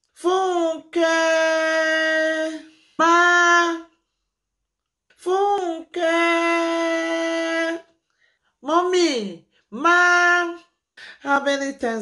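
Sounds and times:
woman singing held notes: 0:05.2 - 0:07.9.

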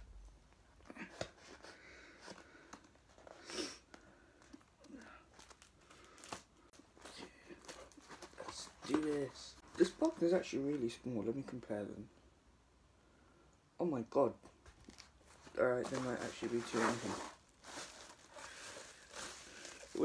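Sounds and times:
cardboard crinkling: 0:04.2 - 0:11.6, 0:14.6 - 0:20.0.

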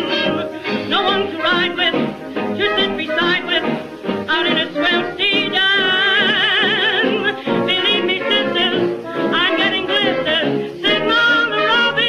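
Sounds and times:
vintage jazz band record: 0:00.0 - 0:12.0.

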